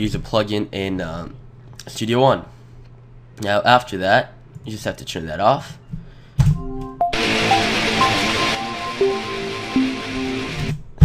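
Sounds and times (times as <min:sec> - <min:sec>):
rhythm guitar loop: 0:06.8 - 0:10.7.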